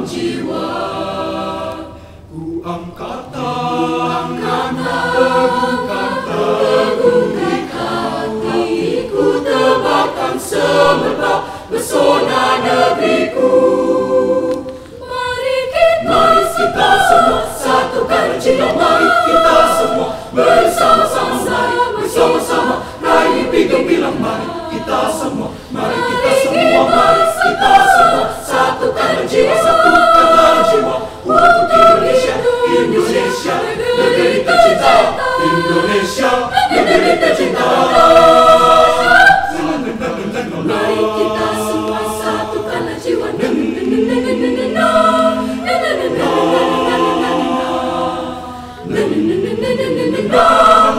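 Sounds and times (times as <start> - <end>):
choir singing a cappella: 0.0 - 50.9.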